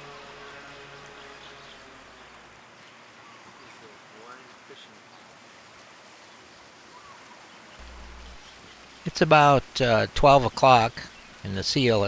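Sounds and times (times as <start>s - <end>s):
ocean surf breaking on rocks: 7.8s - 12.0s.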